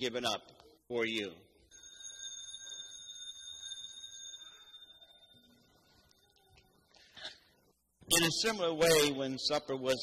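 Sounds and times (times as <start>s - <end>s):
altar bell ringing: 1.7s - 6.0s.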